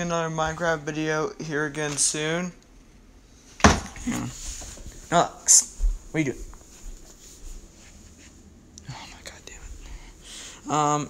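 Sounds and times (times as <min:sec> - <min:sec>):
person whispering faintly: 0:08.8 - 0:10.0.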